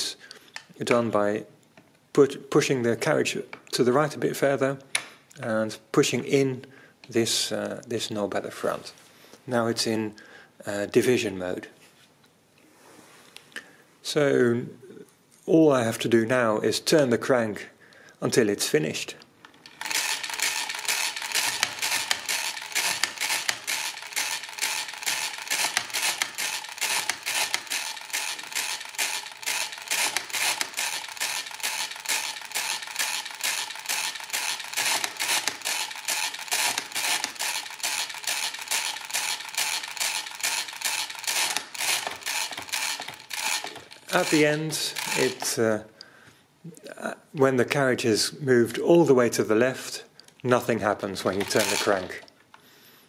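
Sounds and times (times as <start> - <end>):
mechanical calculator clicking and clattering: 19.5 - 45.6, 51.2 - 52.3.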